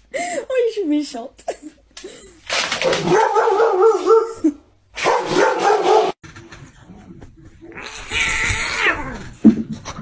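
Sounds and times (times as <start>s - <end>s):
dog barking loudly: 2.8s - 4.4s, 5.0s - 6.2s.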